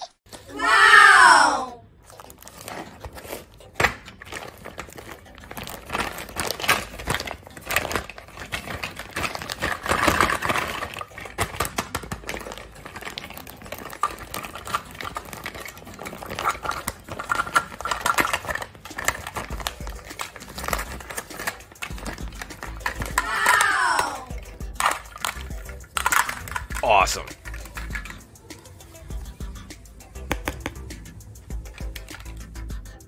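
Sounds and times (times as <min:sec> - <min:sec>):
plastic packaging crinkling: 0:02.0 - 0:28.2
plastic pieces clicking: 0:02.0 - 0:28.7, 0:30.3 - 0:32.7.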